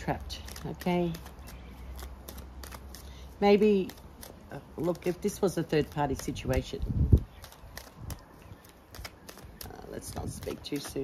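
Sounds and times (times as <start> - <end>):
cards clicking and snapping: 0.0 - 11.0.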